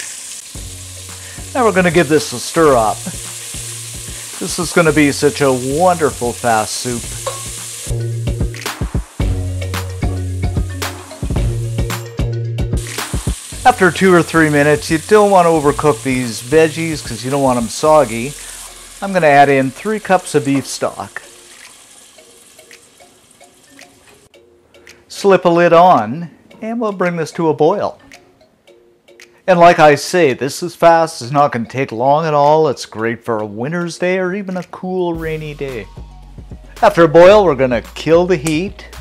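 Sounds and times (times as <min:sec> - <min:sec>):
bacon and vegetables sizzling: 0:00.0 - 0:09.4, 0:12.8 - 0:24.3
turner scraping and knocking pot: 0:06.5 - 0:07.7.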